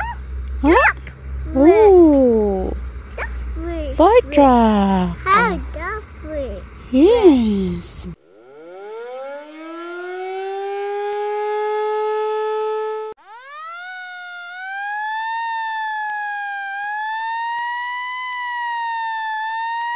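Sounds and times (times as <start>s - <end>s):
siren wailing up and down: 0.0s - 5.8s, 6.9s - 19.9s
siren winding up: 8.3s - 19.9s.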